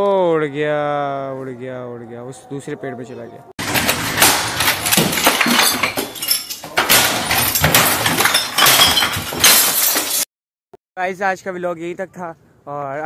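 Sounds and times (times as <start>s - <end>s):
glass bottles smashing: 3.6s - 10.3s.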